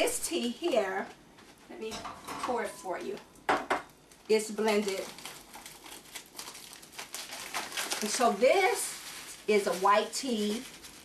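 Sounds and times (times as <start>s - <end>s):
foil pouch crinkling: 4.1s - 11.0s.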